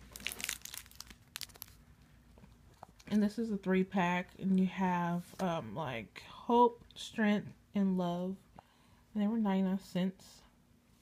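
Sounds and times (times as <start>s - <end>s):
plastic wrapper crinkling and clicking: 0.0s - 1.8s.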